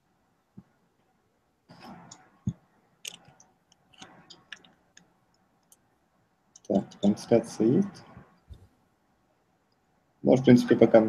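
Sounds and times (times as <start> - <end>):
person speaking: 6.6 - 8.2, 10.3 - 11.0.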